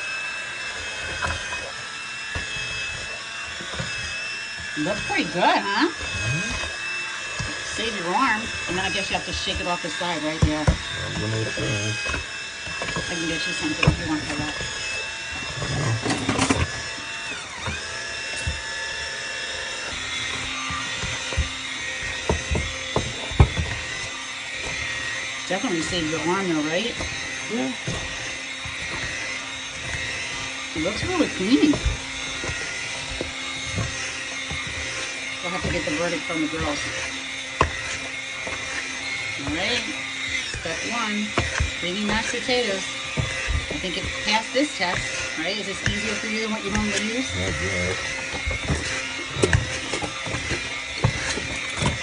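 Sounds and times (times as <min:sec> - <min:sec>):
immersion blender motor whine: 0:00.0 - 0:52.0.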